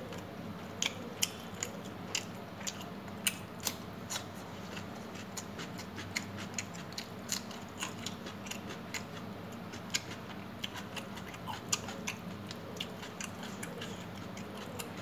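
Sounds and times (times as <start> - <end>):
chewing and mouth sounds: 0.0 - 15.0
sharp wet clicks of eating: 0.1 - 15.0.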